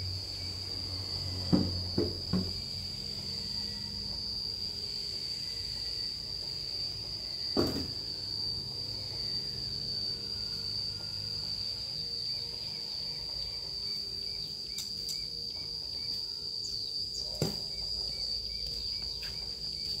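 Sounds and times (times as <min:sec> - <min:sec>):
insect trilling: 0:00.0 - 0:20.0.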